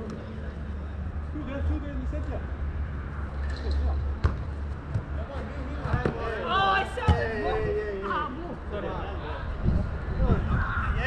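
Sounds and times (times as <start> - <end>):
faint players' voices: 0.0 - 11.0
football kicked on artificial turf: 4.2 - 5.2, 5.8 - 6.3.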